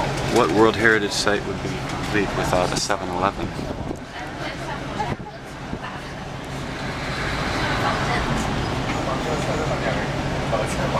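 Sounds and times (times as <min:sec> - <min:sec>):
bus engine humming: 0:00.0 - 0:10.9
passing vehicle rush: 0:00.0 - 0:10.9
road noise: 0:00.0 - 0:10.9.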